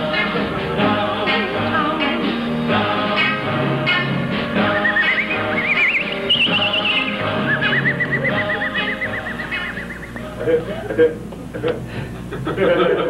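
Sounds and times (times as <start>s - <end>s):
band playing pop song: 0.0s - 10.7s
high voice singing with vibrato: 0.0s - 10.9s.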